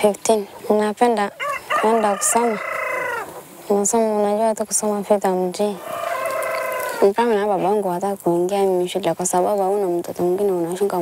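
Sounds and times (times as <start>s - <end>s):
rooster crowing: 1.4s - 3.3s, 5.8s - 7.2s.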